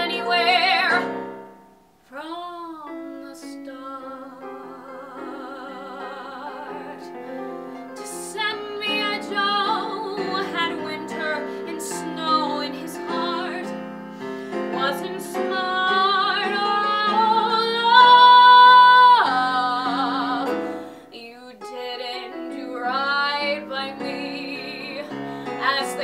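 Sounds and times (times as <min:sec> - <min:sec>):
woman singing: 0:00.0 - 0:01.4, 0:02.1 - 0:13.8, 0:14.5 - 0:26.0
piano accompaniment: 0:00.0 - 0:01.9, 0:02.5 - 0:26.0.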